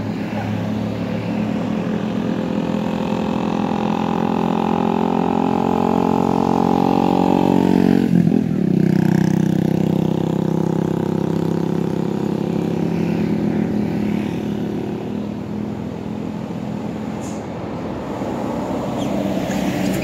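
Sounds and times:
vehicle engine passing by: 0.0s - 20.0s.

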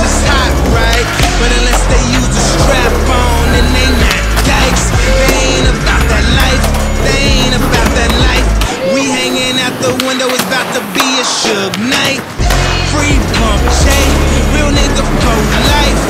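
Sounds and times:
hip-hop music with heavy bass: 0.0s - 16.0s
skateboard sliding along ledge: 0.0s - 16.0s
skateboard wheels rolling on concrete: 0.0s - 16.0s.

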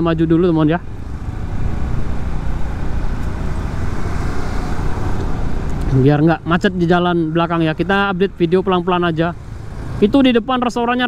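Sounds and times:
car overtaking: 0.0s - 10.5s.

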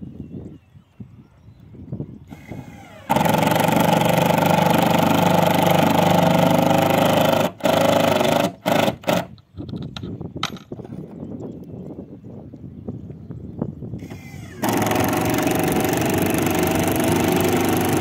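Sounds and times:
cordless drill motor whine: 2.2s - 9.3s, 14.0s - 18.0s.

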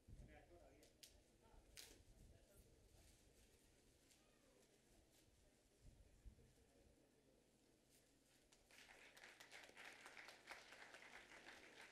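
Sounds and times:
audience applauding: 8.7s - 11.9s.

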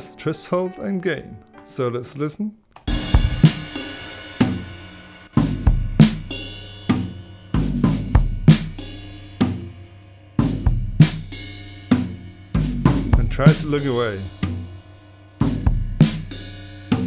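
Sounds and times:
acoustic drum kit playing: 2.8s - 17.0s.

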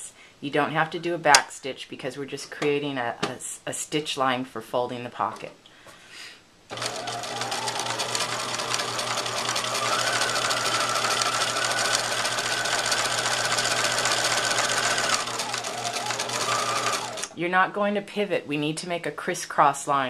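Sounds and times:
electric sewing machine running: 6.7s - 17.3s.

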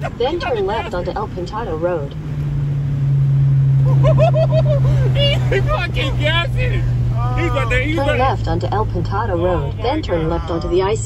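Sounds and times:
person's excited voice: 0.0s - 1.1s, 5.2s - 8.4s, 9.4s - 11.0s
car engine drone: 0.0s - 11.0s.

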